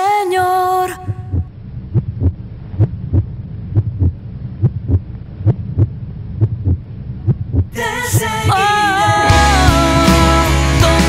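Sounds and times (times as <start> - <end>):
low hum: 0.8 - 10.0
heartbeat thumps: 1.0 - 7.8.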